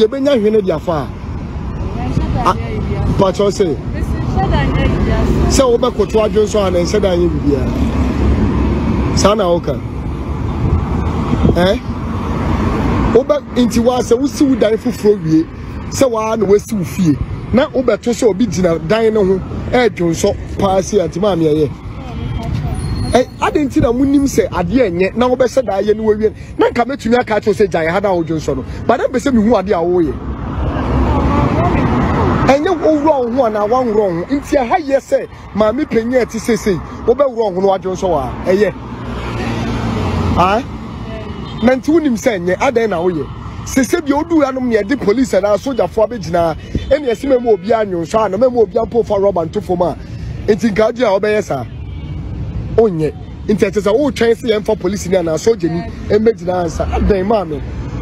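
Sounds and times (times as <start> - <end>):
vehicle passing by: 0.0 - 51.6.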